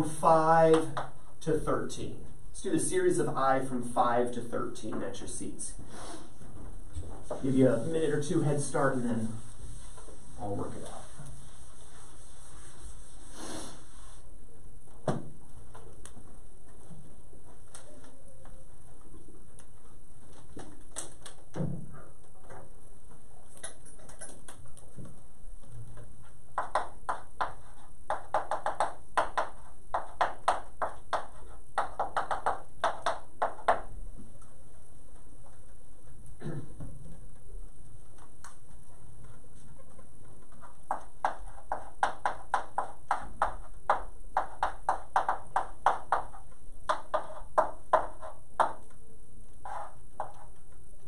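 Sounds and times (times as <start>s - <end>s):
chalk tapping and scratching: 8.8s - 14.2s, 26.2s - 33.9s, 38.1s - 50.8s.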